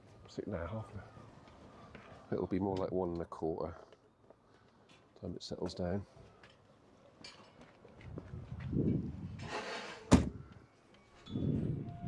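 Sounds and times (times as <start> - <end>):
rush of door swinging: 9.4 - 10.4
car door slamming shut: 10.1 - 10.4.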